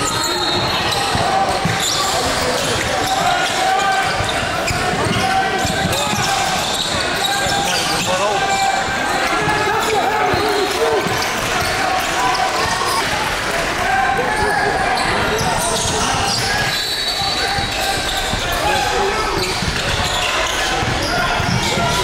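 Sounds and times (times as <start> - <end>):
basketball bouncing on wooden court: 0.0 - 8.1, 14.4 - 22.0
indistinct voices: 0.0 - 22.0.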